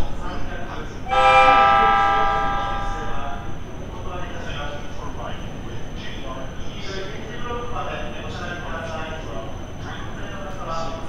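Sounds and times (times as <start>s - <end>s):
electric train horn: 1.1s - 3.4s.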